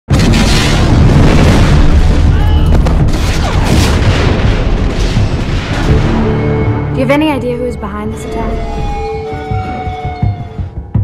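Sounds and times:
large explosion with rumble: 0.1s - 6.8s.

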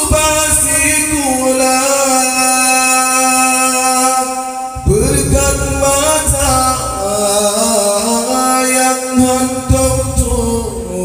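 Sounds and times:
man singing long note over loudspeakers: 0.0s - 11.0s.

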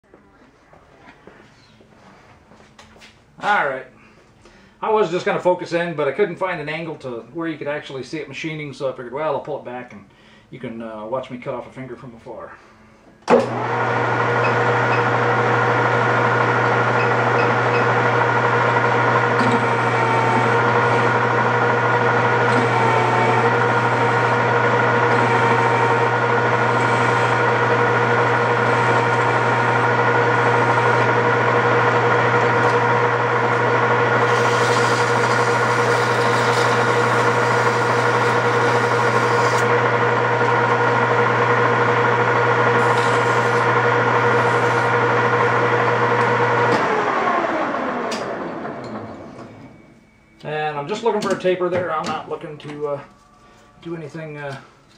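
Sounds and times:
metal lathe whining: 13.3s - 49.7s.

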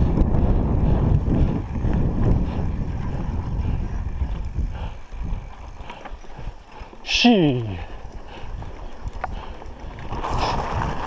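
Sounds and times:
wind on microphone: 0.0s - 7.0s, 7.6s - 11.0s
bike knocking and rattling: 0.0s - 11.0s
bike tyres rumbling on dirt: 0.0s - 11.0s.

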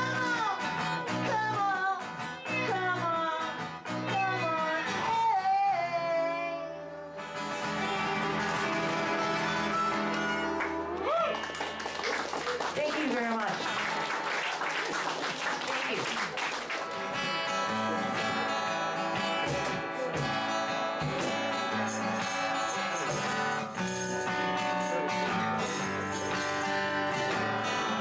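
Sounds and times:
acoustic guitar: 0.0s - 28.0s
harmonica: 6.7s - 11.0s
applause: 8.2s - 17.9s.

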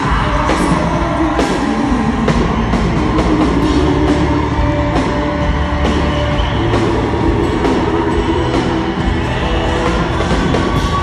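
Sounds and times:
crowd noise: 0.0s - 11.0s
live band playing loud: 0.0s - 11.0s.

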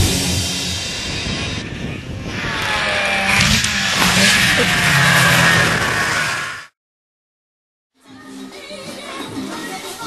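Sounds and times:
vehicle engine revving: 0.0s - 6.8s.

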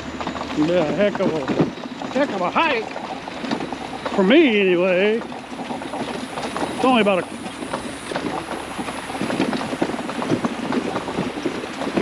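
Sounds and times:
scooter rattling over bumps: 0.0s - 12.0s
scooter rolling rumble: 0.0s - 12.0s.

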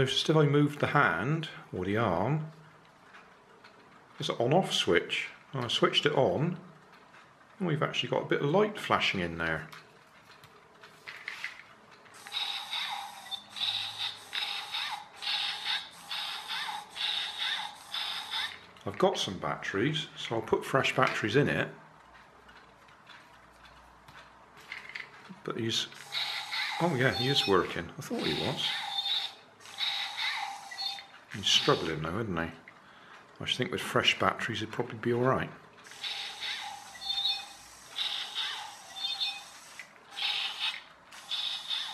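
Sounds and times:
toy robot bursts: 11.1s - 18.7s, 25.8s - 32.1s, 35.8s - 41.9s.

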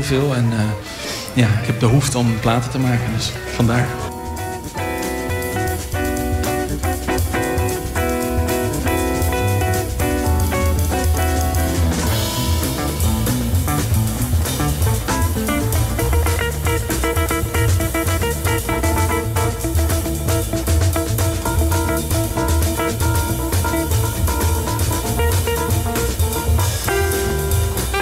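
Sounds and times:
electric guitar chords: 0.0s - 28.0s
live jazz band playing: 0.0s - 28.0s.

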